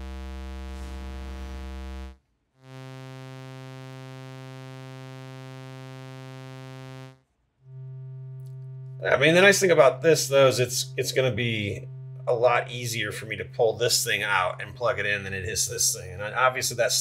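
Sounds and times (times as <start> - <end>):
synthesizer low drone: 6.2 - 16.6.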